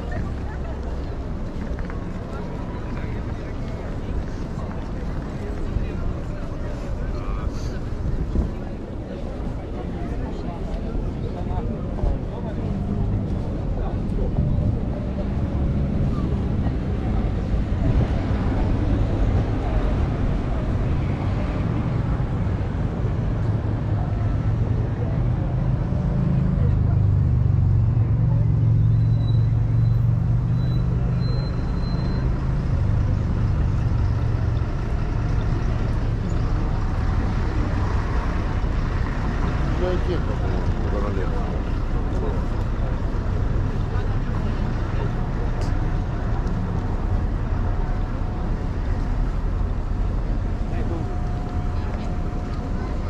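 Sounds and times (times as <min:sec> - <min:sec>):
heavy vehicle engine: 0:00.0 - 0:53.0
passers-by chatting: 0:00.0 - 0:53.0
road traffic rumble: 0:00.0 - 0:53.0.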